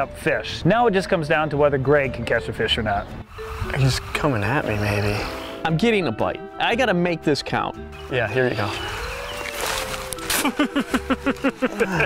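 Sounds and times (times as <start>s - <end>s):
man laughing: 10.3s - 12.0s.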